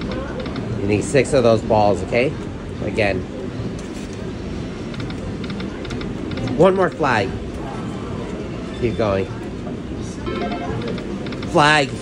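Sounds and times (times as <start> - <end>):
slot machine electronic ticks: 10.3 - 11.6
casino floor din: 10.3 - 12.0.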